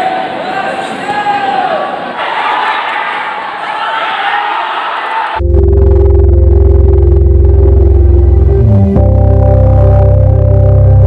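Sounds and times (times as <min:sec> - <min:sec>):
crowd shouting and cheering: 0:00.0 - 0:05.4
electronic intro music with deep bass: 0:05.4 - 0:11.0.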